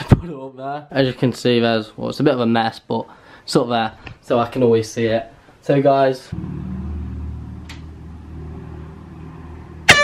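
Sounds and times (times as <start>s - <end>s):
low steady hum: 6.3s - 10.0s
loud horn blast: 6.4s - 10.0s.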